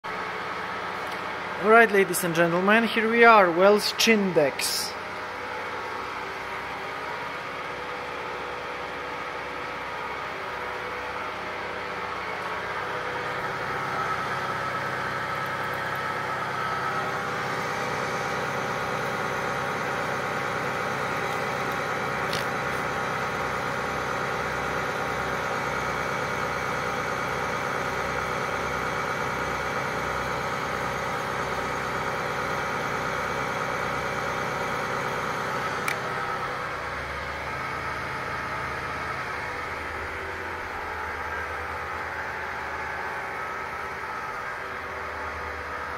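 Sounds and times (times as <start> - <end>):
milling machine whine and hum: 0.1 - 45.9.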